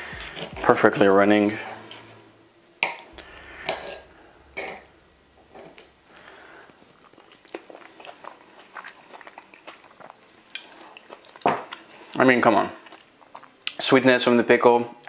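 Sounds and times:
person chewing: 7.0s - 11.8s.

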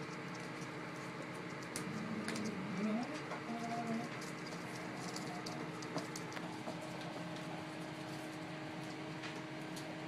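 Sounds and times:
dog claws clicking on wood floor: 3.2s - 7.4s.

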